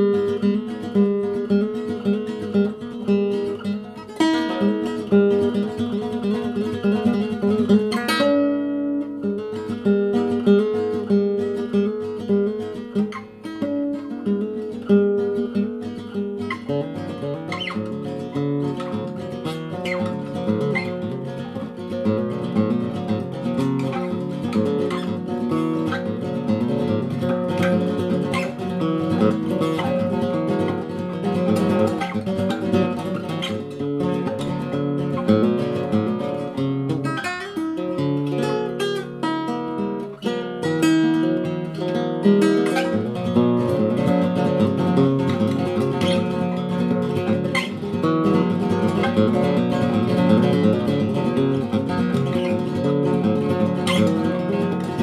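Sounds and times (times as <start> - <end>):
nylon-string guitar playing: 0.0 - 55.0.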